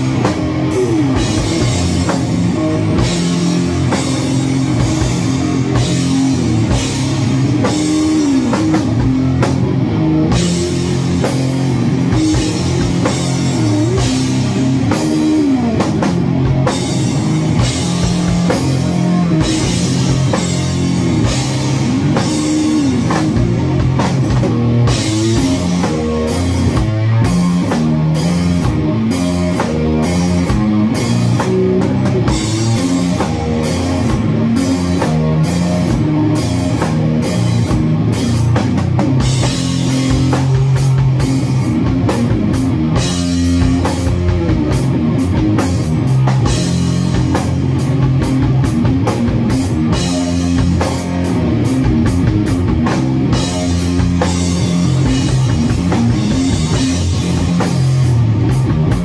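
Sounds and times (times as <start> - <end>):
drum kit playing: 0.0 - 59.0
electric guitar riff: 0.0 - 59.0.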